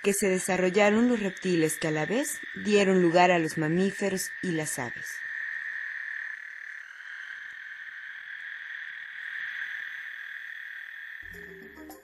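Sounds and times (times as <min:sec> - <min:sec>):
frogs trilling: 0:00.0 - 0:12.0.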